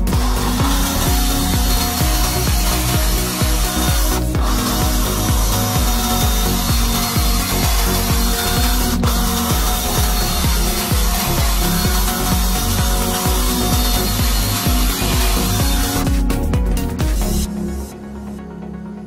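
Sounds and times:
electric drill boring into metal: 0.0s - 17.5s
electronic music with beat: 0.0s - 19.0s.

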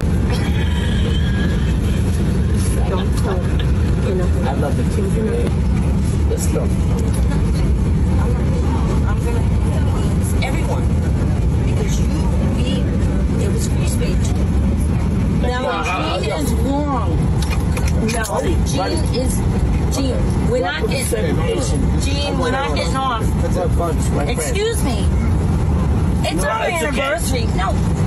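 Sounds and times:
airliner cabin rumble: 0.0s - 28.0s
indistinct voices talking: 0.0s - 28.0s.

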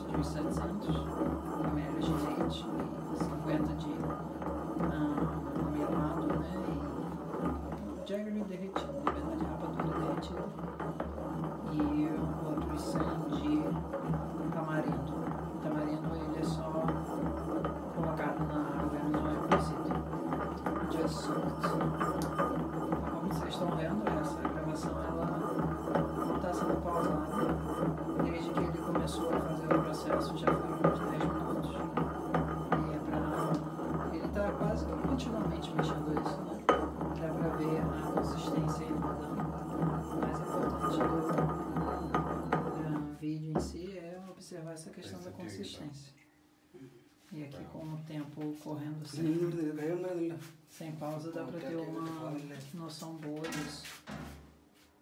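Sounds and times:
pestle pounding in mortar: 0.0s - 43.9s.

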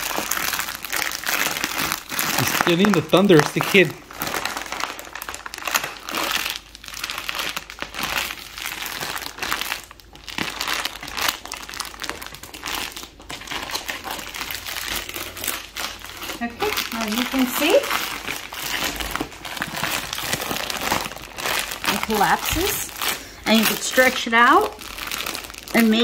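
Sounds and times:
plastic bag crinkling: 0.0s - 26.0s.

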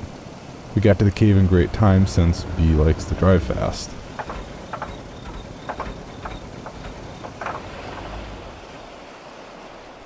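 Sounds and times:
car engine and road rumble: 0.0s - 10.0s
light knocks and clicks: 4.1s - 8.1s.

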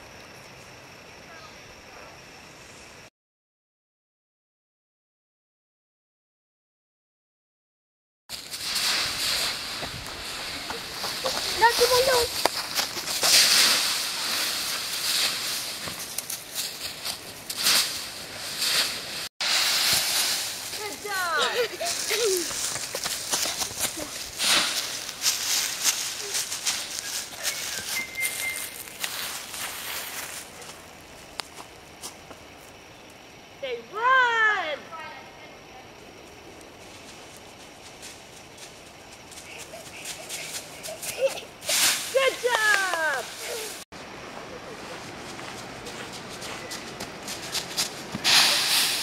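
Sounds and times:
dry leaves crunching and rustling: 8.3s - 30.8s.

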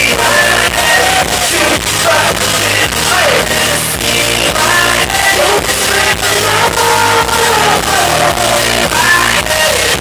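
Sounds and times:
dance-pop track with deep bass: 0.0s - 10.0s
man singing: 0.0s - 10.0s.

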